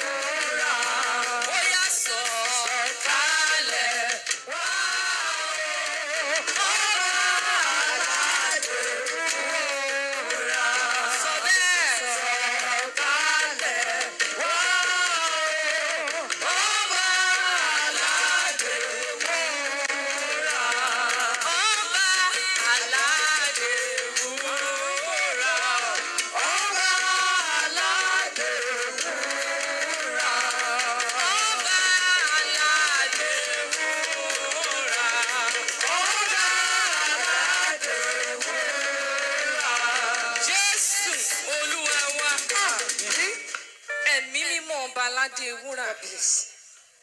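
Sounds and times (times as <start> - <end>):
person singing gospel: 0.0 - 44.5
music: 0.0 - 44.7.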